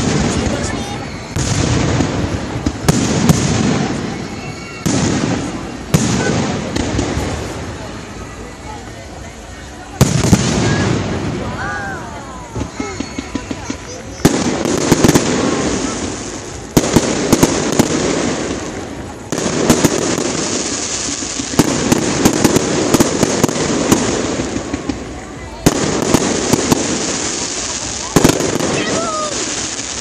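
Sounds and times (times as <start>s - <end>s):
dense firework crackling: 0.0s - 30.0s
fireworks shells bursting: 12.5s - 30.0s.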